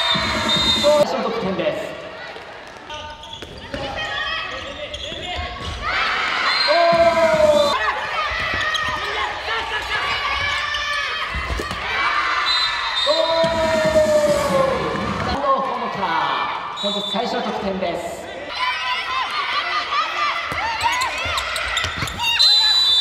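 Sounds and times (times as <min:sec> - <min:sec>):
handball bouncing in hall: 0:00.0 - 0:01.0, 0:02.2 - 0:06.0, 0:20.4 - 0:23.0.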